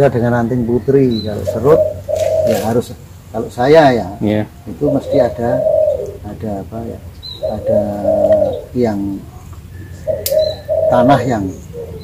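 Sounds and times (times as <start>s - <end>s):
dove cooing: 1.1s - 12.0s.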